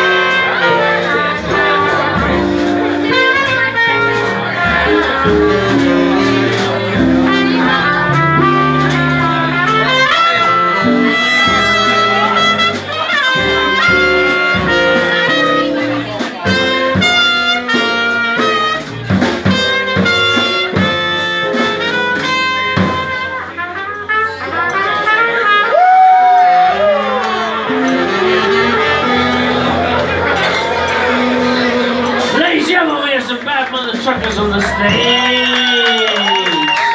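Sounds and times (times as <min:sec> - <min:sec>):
drum kit: 0:00.0 - 0:24.3, 0:25.0 - 0:36.9
saxophone: 0:00.0 - 0:32.4
trumpet melody: 0:00.0 - 0:33.4.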